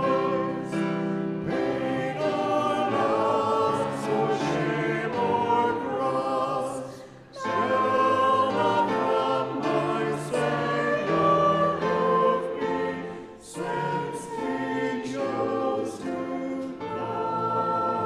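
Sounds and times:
group singing a hymn: 0:00.0 - 0:18.0.

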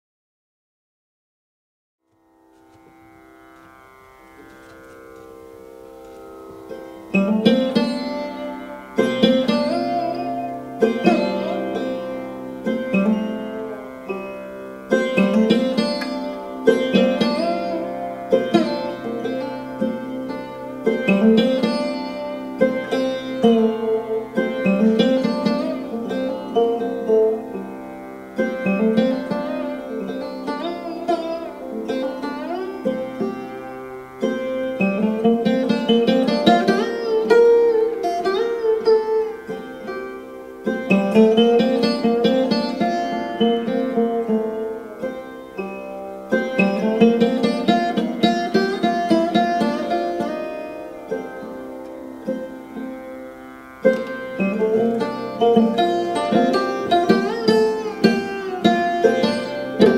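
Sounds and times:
plucked sarod strokes: 0:02.1 - 0:59.9
ringing strings: 0:02.1 - 0:59.9.

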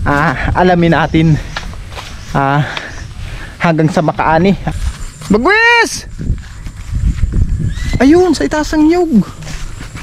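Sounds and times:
footsteps through tall grass: 0:00.1 - 0:07.9, 0:09.0 - 0:10.0.

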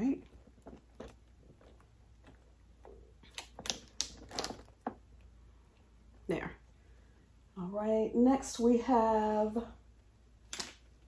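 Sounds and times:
plastic bottles clicking and knocking: 0:03.3 - 0:05.1.

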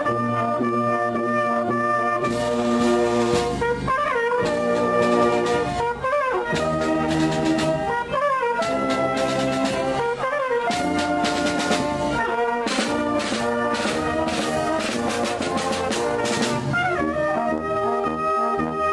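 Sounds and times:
wind band playing: 0:00.0 - 0:18.9.

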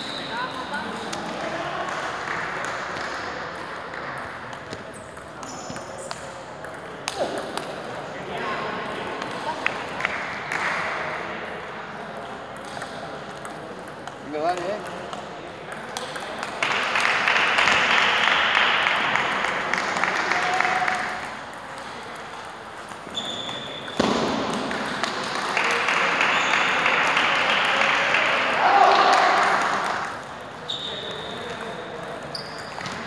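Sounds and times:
voices in large hall: 0:00.0 - 0:33.0.

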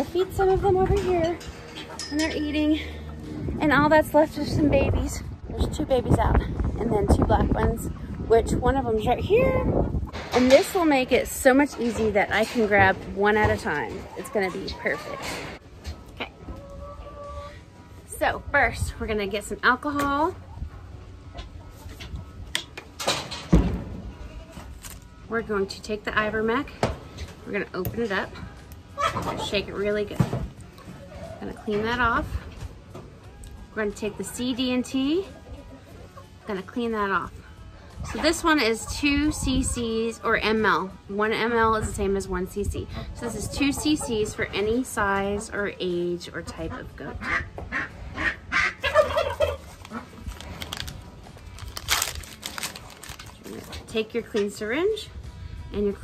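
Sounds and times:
turkey gobbling: 0:47.2 - 0:50.2
wrapper tearing crackle: 0:49.8 - 0:53.6.

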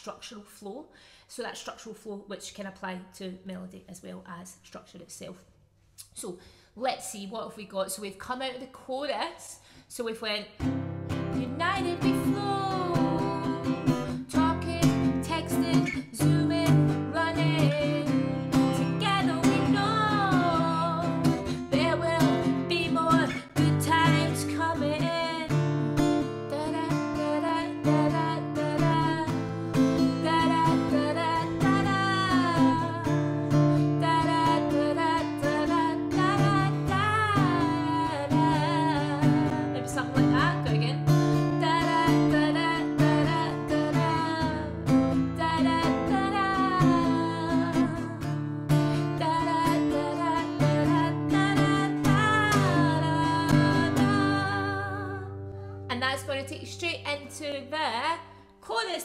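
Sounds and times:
woman singing: 0:07.2 - 0:59.0
acoustic guitar chords: 0:10.6 - 0:58.2.

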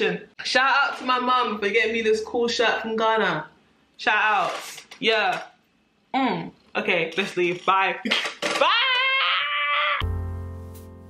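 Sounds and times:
keyboard chord: 0:10.0 - 0:11.0.

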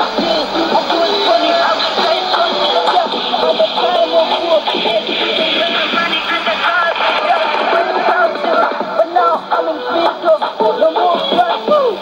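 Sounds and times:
radio static hiss: 0:00.0 - 0:12.0
announcer speaking over radio: 0:05.5 - 0:09.7.

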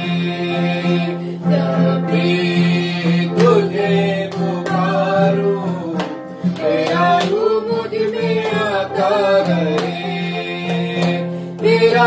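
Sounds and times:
man and woman singing: 0:00.0 - 0:12.0
strummed acoustic guitar: 0:00.0 - 0:12.0.

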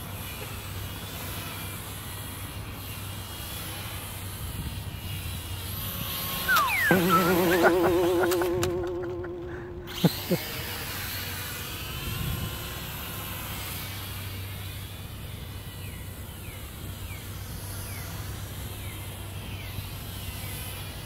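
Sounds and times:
toy drone motors whining: 0:06.5 - 0:09.6.

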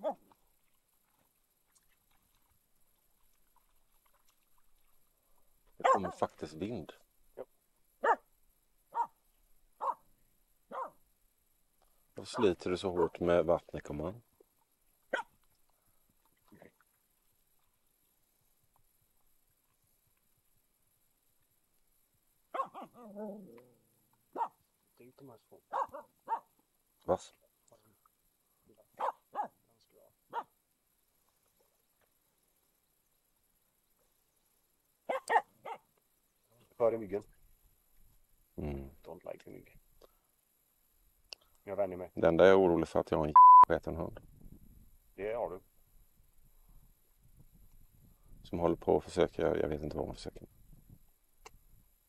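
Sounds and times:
dog barking: 0:00.0 - 0:00.2, 0:05.8 - 0:06.3, 0:08.0 - 0:08.3, 0:08.9 - 0:09.2, 0:09.8 - 0:10.0, 0:10.7 - 0:11.0, 0:15.1 - 0:15.3, 0:22.5 - 0:23.1, 0:24.3 - 0:24.6, 0:25.7 - 0:26.5, 0:28.9 - 0:29.6, 0:30.3 - 0:30.5, 0:35.1 - 0:35.9.

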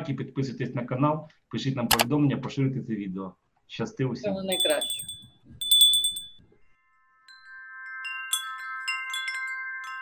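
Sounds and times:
bright bell ding: 0:04.5 - 0:06.4
held chime tones: 0:04.5 - 0:06.4.

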